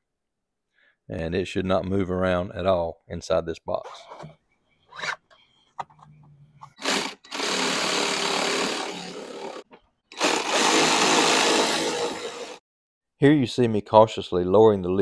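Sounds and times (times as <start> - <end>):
power ratchet running: 6.8 - 12.6.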